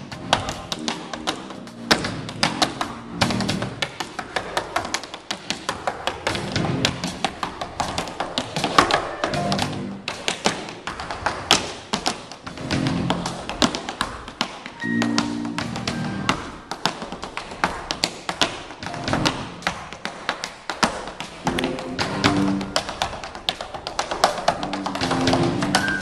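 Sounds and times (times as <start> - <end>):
tap shoes on wooden stage: 0.0 - 26.0
jazz band playing: 9.1 - 10.0, 14.8 - 16.5.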